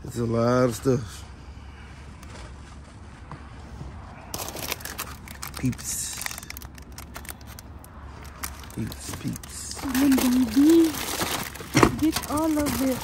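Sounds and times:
plastic and cardboard crinkling: 0:04.3 - 0:13.0.

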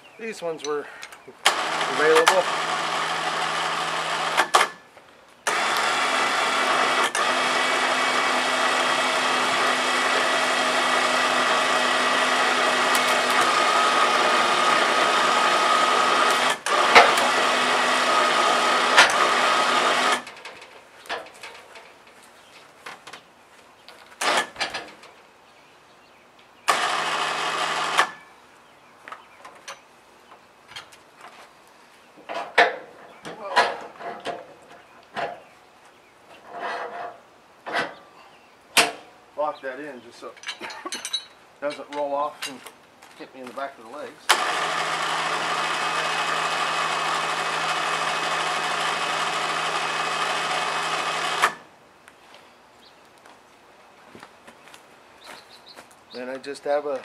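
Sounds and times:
electric winch motor running: 0:01.4 - 0:04.8, 0:05.5 - 0:20.4, 0:26.7 - 0:28.2, 0:44.3 - 0:51.7
knocks of log and tongs: 0:38.8 - 0:39.1.

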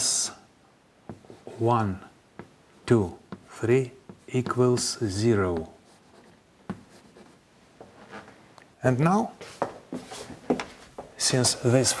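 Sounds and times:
chalk tap: 0:01.1 - 0:01.5, 0:02.4 - 0:07.4
chalk scratching on blackboard: 0:04.1 - 0:07.4.

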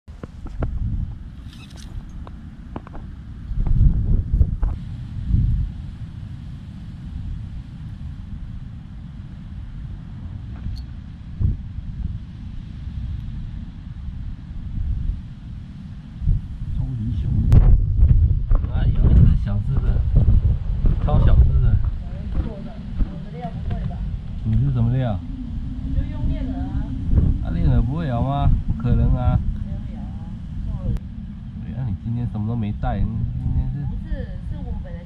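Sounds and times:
wind buffeting microphone: 0:00.1 - 0:35.0.

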